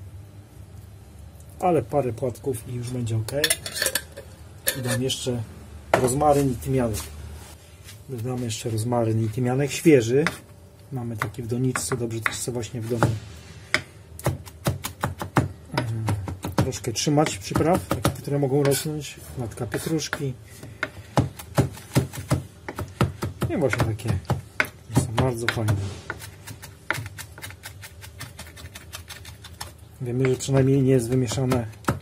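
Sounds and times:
knife chopping on wooden board: 11.2 - 18.9, 19.7 - 32.0.

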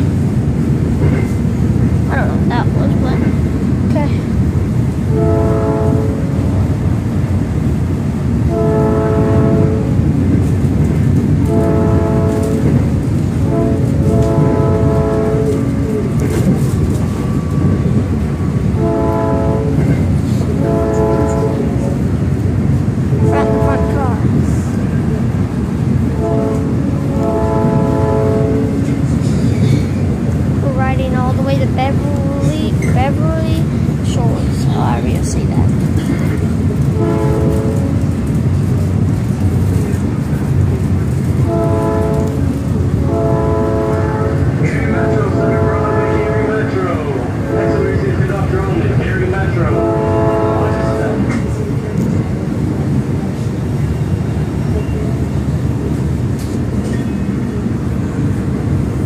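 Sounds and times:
train wheels rumbling on track: 0.0 - 59.0
train horn blasts: 5.0 - 6.6, 8.4 - 10.0, 11.4 - 16.5, 18.7 - 22.2, 23.1 - 24.4, 26.0 - 29.1, 36.9 - 38.1, 41.4 - 48.3, 49.3 - 51.7.

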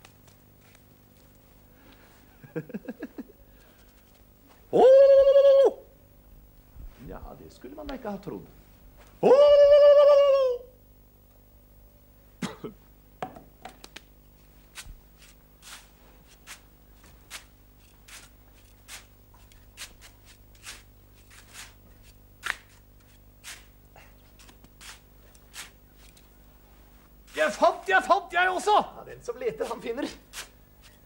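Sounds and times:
faint low hum: 0.0 - 31.0
hand tool scraping sand: 14.8 - 16.6, 17.3 - 23.7, 27.3 - 27.8, 29.6 - 31.0.

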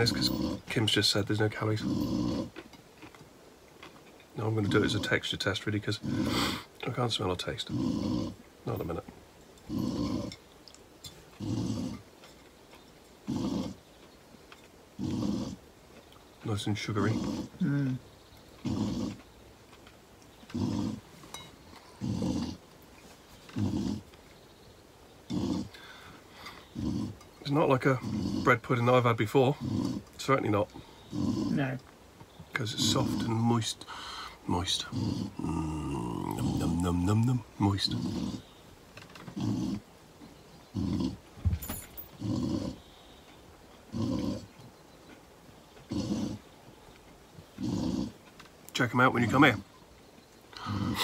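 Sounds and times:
dog snoring breaths: 0.0 - 2.6, 4.4 - 6.7, 7.5 - 9.0, 11.4 - 12.0, 13.3 - 13.8, 15.0 - 15.6, 16.5 - 18.0, 18.6 - 19.2, 20.5 - 22.6, 23.5 - 24.1, 25.3 - 31.8, 32.6 - 38.6, 40.7 - 42.9, 43.9 - 44.5, 47.6 - 48.2.

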